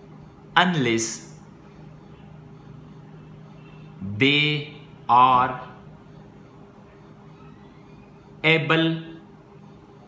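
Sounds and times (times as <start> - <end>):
faint low background hum: 0.0 - 10.0.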